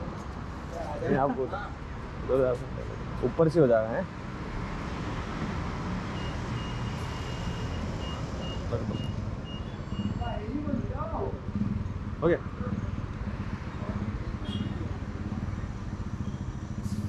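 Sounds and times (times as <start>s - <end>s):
traffic noise: 0.0s - 17.0s.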